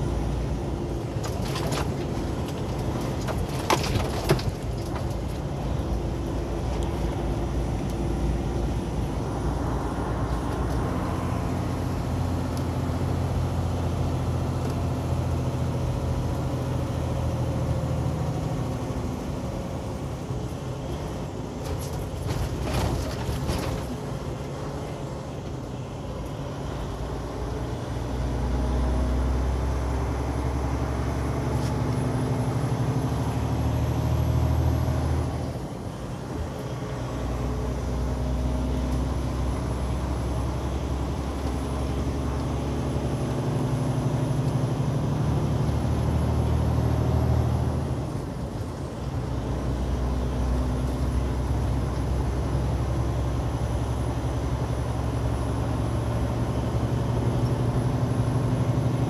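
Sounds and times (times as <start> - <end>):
high engine whine: 0.0 - 59.0
road noise: 0.0 - 59.0
truck diesel engine: 0.0 - 59.0.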